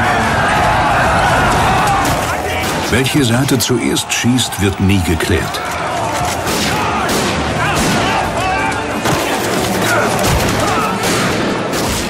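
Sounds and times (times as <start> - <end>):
people shouting and screaming: 0.0 - 11.5
rapid gunfire: 9.0 - 12.0.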